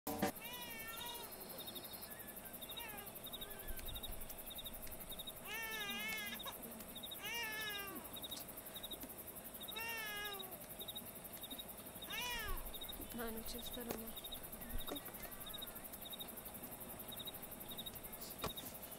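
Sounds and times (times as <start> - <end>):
baby crying: 9.8 - 10.6, 12.1 - 12.6.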